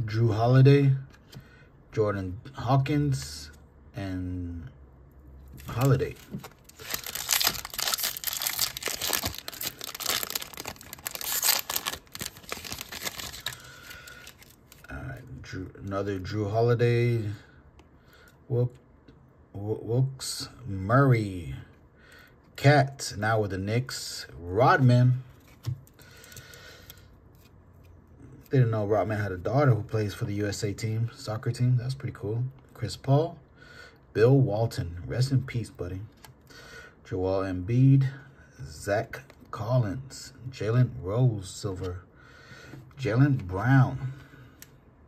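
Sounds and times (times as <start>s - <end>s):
card pack wrapper crinkling: 5.6s - 14.9s.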